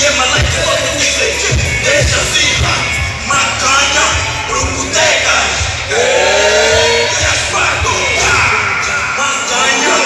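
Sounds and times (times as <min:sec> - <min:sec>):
backing track with heavy bass beat: 0:00.0 - 0:10.0
man singing into microphone: 0:00.0 - 0:10.0.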